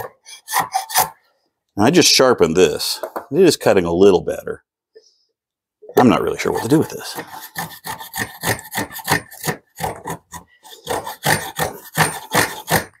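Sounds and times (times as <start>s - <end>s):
plane scraping wood: 0.0s - 1.2s, 6.2s - 13.0s.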